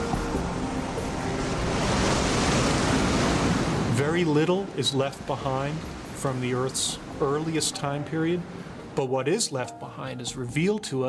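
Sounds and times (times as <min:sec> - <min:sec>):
surf waves washing in: 0:00.0 - 0:09.2
soft background music: 0:00.0 - 0:11.0.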